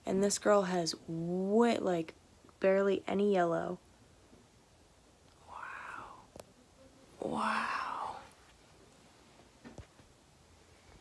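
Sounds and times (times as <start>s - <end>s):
woman whispering: 5.4s - 6.4s, 7.2s - 8.4s.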